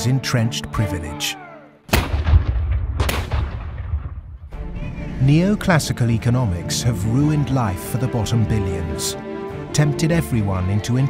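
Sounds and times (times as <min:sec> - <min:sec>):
cannon boom: 0:01.9 - 0:04.6.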